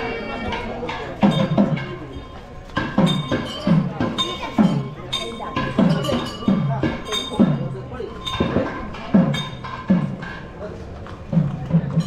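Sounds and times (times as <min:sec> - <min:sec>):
metallic bells ringing and clinking: 0:00.0 - 0:10.7, 0:11.5 - 0:12.0
drum strokes: 0:00.0 - 0:12.0.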